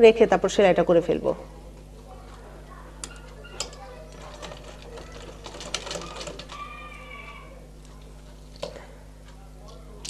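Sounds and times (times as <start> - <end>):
sewing machine stitching: 3.6 - 6.6.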